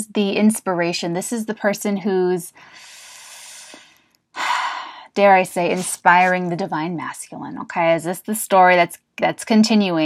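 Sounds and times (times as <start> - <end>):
woman breathing: 2.5 - 5.2.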